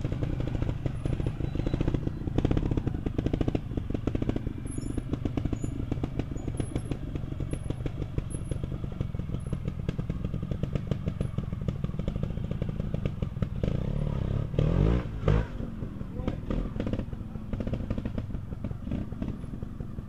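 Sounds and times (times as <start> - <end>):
motorcycle engine revving: 0.0 - 20.0.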